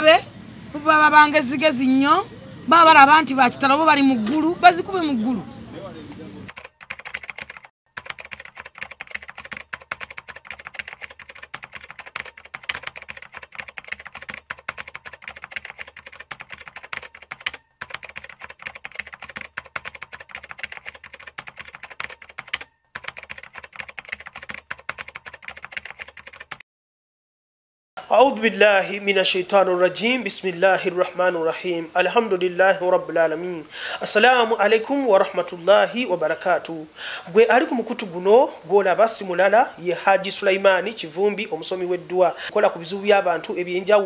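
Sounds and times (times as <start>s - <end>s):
keyboard typing clicks: 6.5s - 26.6s.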